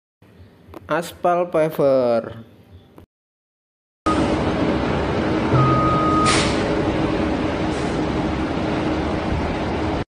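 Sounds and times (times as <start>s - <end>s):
diesel engine running: 4.1s - 10.0s.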